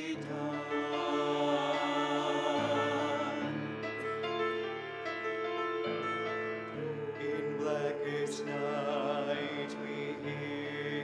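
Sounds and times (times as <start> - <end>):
vocal group singing a hymn: 0.0 - 4.8, 6.0 - 11.0.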